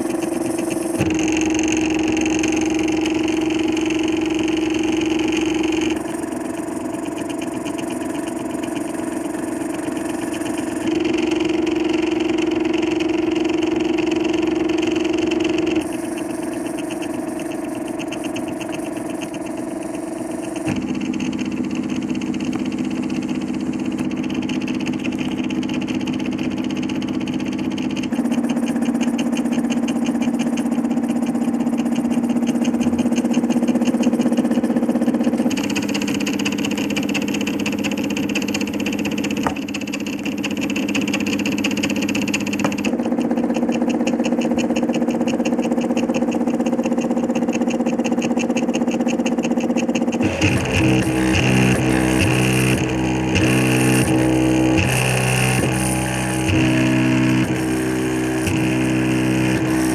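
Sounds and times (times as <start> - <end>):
three-d printer stepper motors whining: 0.0 - 59.9.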